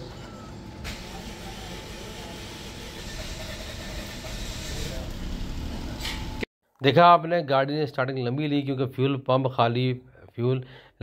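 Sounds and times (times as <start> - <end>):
engine cranking by starter: 2.9 - 6.4.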